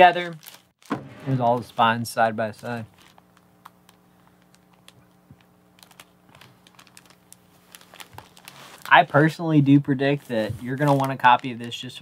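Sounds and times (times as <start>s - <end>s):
faint steady hum: 0.0s - 12.0s
record sleeves rustling and clicking: 0.0s - 12.0s.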